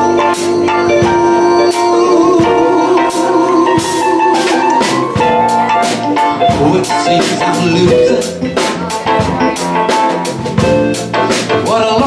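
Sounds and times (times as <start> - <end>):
person singing with sliding pitch: 0.0 - 9.6
drum kit with cymbal strokes: 0.0 - 12.0
keyboard chords: 0.0 - 12.0.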